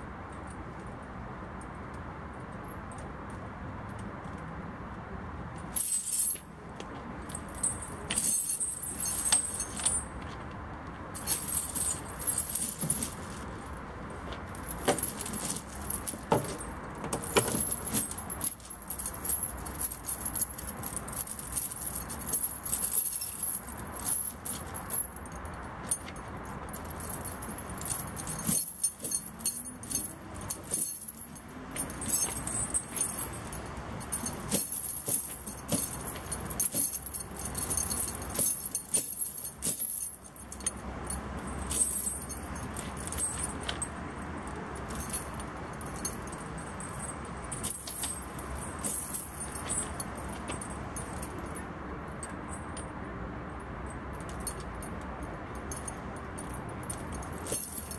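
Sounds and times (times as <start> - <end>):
snow chain links clinking: 5.6 - 6.5, 7.2 - 10.4, 11.2 - 51.6, 55.6 - 57.9.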